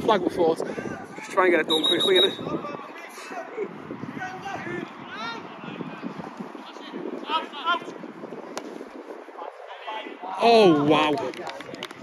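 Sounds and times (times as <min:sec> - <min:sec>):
players shouting: 0:00.9 - 0:08.1.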